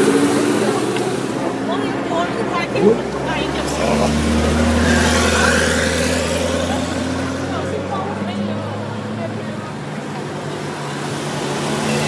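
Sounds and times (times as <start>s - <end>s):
car engine passing by: 0.0s - 12.0s.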